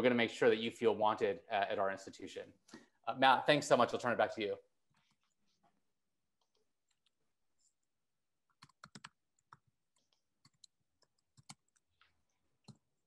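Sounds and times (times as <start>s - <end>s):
computer keys clicking: 8.5s - 12.0s.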